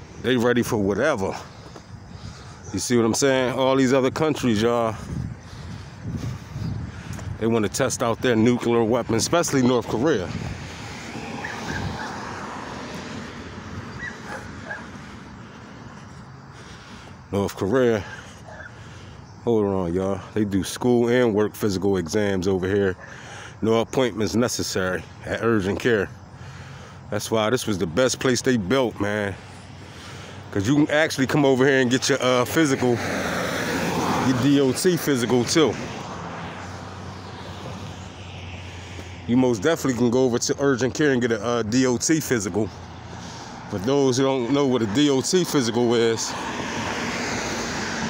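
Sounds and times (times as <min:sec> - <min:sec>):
distant engine rumble: 0:00.0 - 0:48.0
outdoor street noise: 0:00.0 - 0:48.0.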